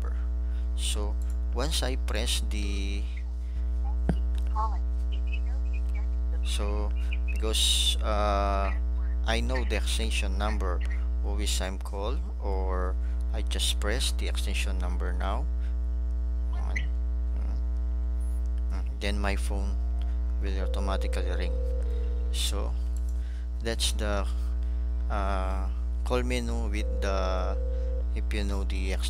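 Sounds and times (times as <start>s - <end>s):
electrical mains hum: 0.0s - 29.0s.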